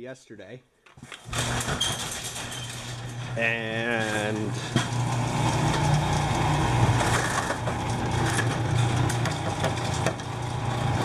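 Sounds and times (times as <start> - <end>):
garage door motor hum: 1.0 - 11.0
garage door rattling: 1.2 - 11.0.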